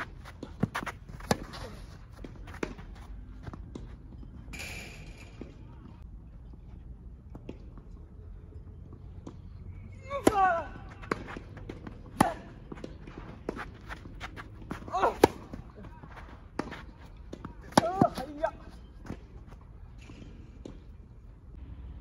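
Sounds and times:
racket hitting tennis ball: 0:00.0 - 0:02.9, 0:10.2 - 0:15.8, 0:16.5 - 0:18.4.

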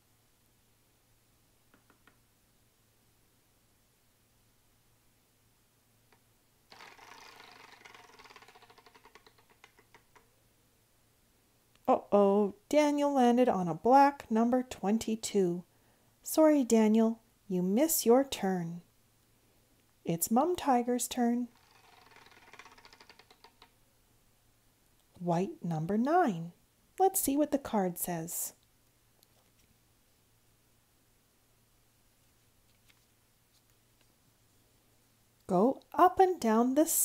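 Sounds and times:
prize wheel clicking: 0:06.7 - 0:10.2, 0:21.5 - 0:23.7.

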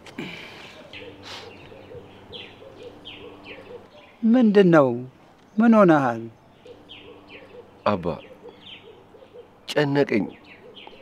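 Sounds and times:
soft low pulsing bird call: 0:00.2 - 0:04.2
high falling bird chirps: 0:00.7 - 0:04.7.

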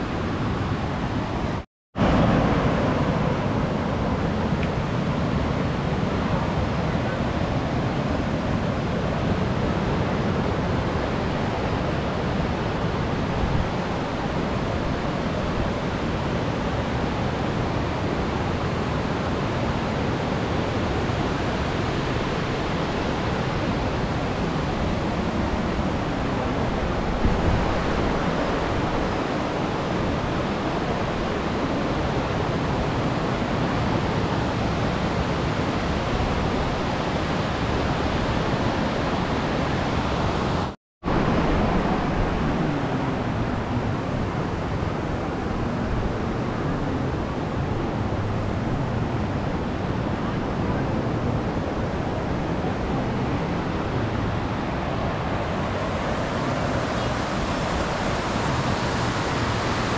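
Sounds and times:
waterfall rushing: 0:01.4 - 0:59.9.

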